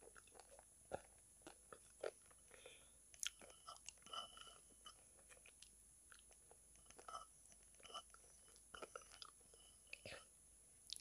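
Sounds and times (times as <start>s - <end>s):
mouth sounds of chewing: 0.0s - 10.3s.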